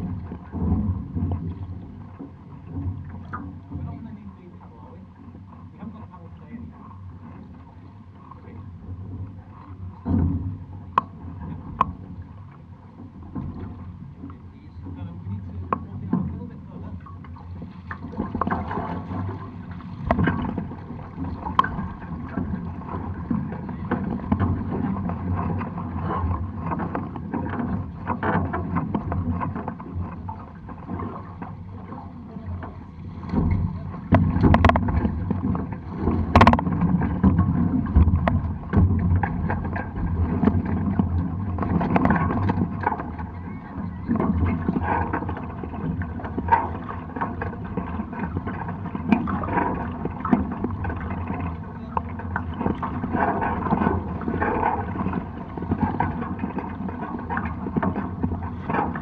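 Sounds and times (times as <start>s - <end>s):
water noise: 0.0s - 59.0s
wind noise: 33.1s - 47.5s.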